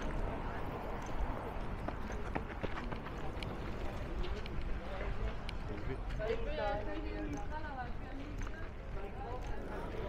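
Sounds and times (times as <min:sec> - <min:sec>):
footsteps on paved path: 0:00.0 - 0:10.0
low outdoor background: 0:00.0 - 0:10.0.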